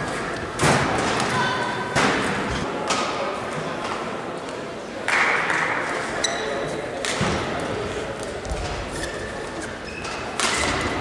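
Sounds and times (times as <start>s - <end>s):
shoes squeaking on court: 8.9s - 10.8s
rackets hitting shuttlecock: 10.0s - 10.9s.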